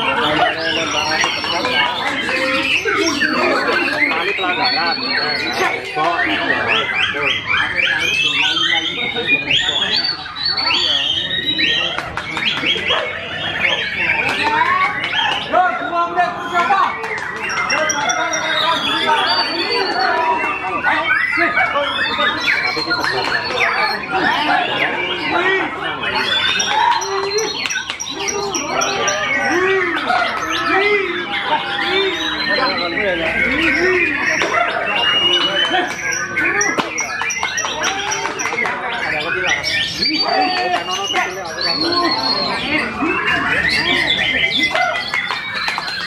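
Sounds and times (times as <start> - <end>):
bird singing whistles and chirps: 0.0 - 46.0
voices murmuring: 0.0 - 46.0.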